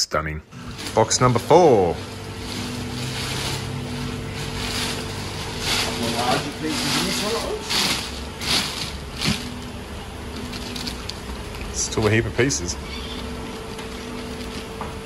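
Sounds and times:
low background hum: 0.0s - 15.0s
plastic bag crinkling: 0.6s - 15.0s.

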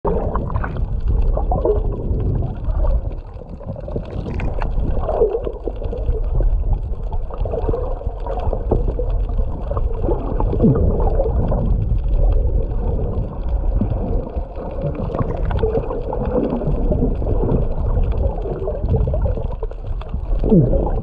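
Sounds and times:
underwater rumble of moving water: 0.0s - 21.0s
water gurgles: 0.0s - 21.0s
small underwater clicks: 0.1s - 21.0s.

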